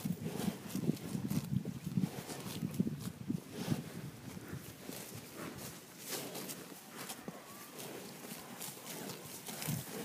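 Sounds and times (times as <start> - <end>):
cow tearing grass: 0.0 - 10.0.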